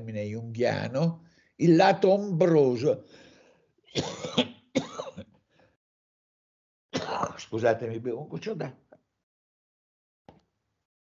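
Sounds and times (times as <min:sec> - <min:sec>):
man coughing: 0:03.9 - 0:05.3, 0:07.0 - 0:07.5.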